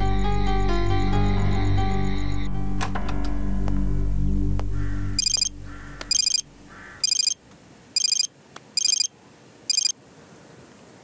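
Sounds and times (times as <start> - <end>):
phone ringtone: 5.2 - 5.5, 6.1 - 6.4, 7.0 - 7.4, 8.0 - 9.1, 9.7 - 10.0.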